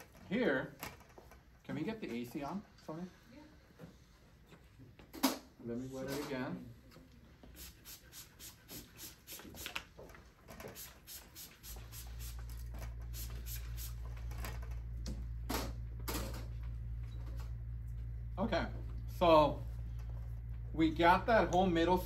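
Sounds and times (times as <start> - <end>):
steady low hum: 0.0 - 22.0
spray bottle misting: 7.5 - 9.9, 10.6 - 14.1.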